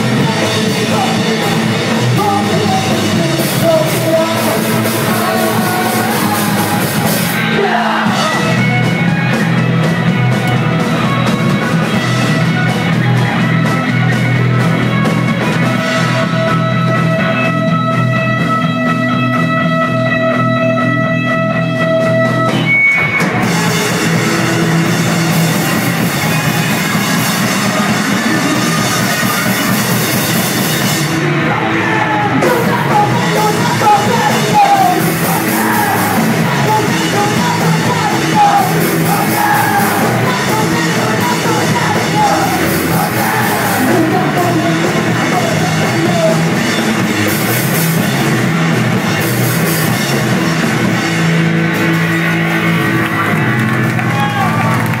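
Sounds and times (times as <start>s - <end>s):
punk rock band playing: 0.0s - 55.0s
shouted vocal: 4.0s - 8.6s, 31.4s - 46.6s.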